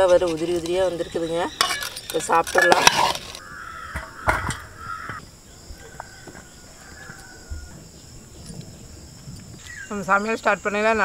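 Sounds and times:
crows cawing: 0:03.3 - 0:07.8.

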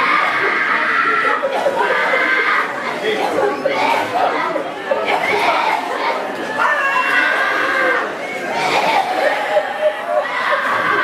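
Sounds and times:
congregation praying aloud: 0:00.0 - 0:11.0.

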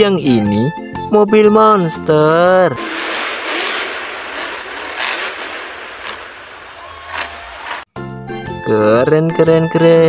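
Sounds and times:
monster truck engine roar: 0:02.8 - 0:07.8.

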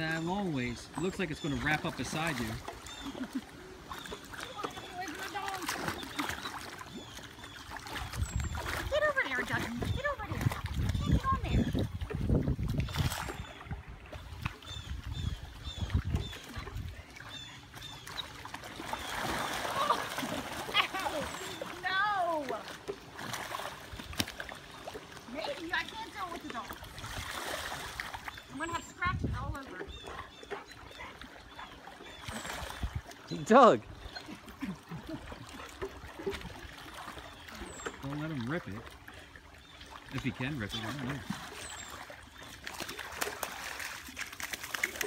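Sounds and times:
pool water splashing: 0:00.0 - 0:45.0.

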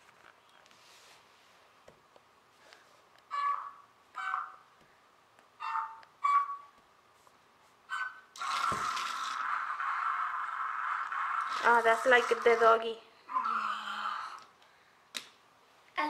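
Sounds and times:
robot toy whirring: 0:08.4 - 0:14.4.

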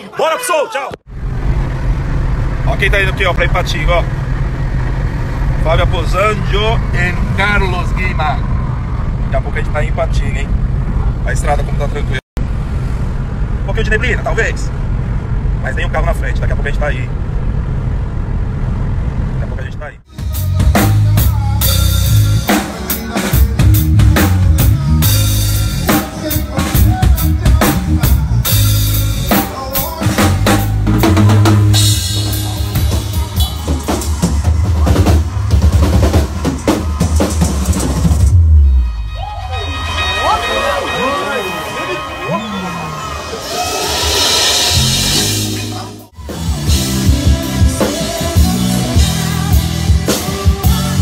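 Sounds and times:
car road noise: 0:01.0 - 0:20.1, 0:27.0 - 0:49.9
electric bass: 0:13.2 - 0:22.7, 0:23.4 - 0:39.2, 0:43.9 - 0:51.0
drum kit played hard: 0:20.1 - 0:40.1, 0:43.2 - 0:51.0
audience cheering: 0:30.4 - 0:47.0.

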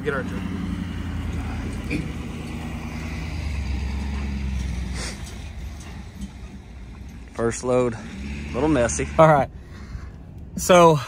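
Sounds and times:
pickup truck towing trailer: 0:00.0 - 0:11.0.

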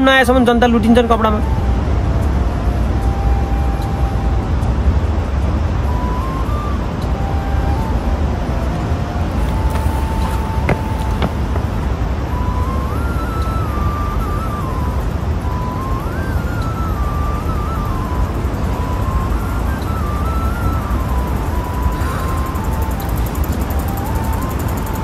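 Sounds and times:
faint background music: 0:00.0 - 0:25.0
street noise rumble: 0:01.4 - 0:25.0.

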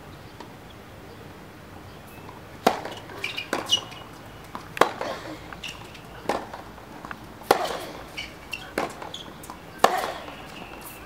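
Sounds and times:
tennis ball struck by racket: 0:02.2 - 0:11.0.

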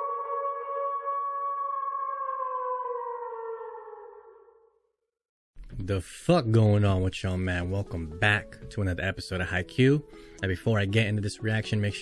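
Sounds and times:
man talking: 0:05.7 - 0:12.0.

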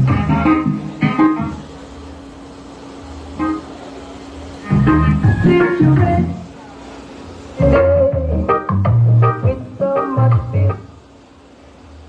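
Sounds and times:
music over large sound system: 0:00.0 - 0:02.5, 0:03.2 - 0:03.8, 0:04.4 - 0:06.6, 0:07.4 - 0:11.0.

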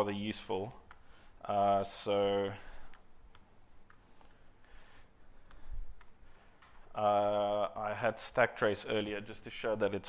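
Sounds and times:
keyboard typing clicks: 0:05.4 - 0:06.8.

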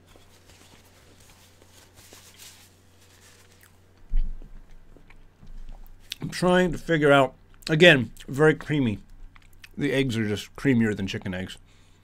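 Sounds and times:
wet chewing sounds: 0:03.4 - 0:06.2.

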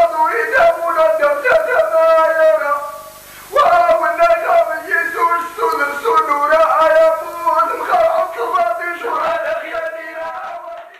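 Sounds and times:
man singing: 0:03.6 - 0:10.9.

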